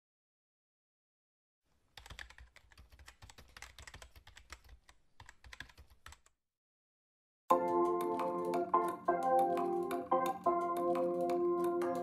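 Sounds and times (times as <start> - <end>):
typing on laptop keyboard: 1.9 - 6.4, 7.5 - 12.0.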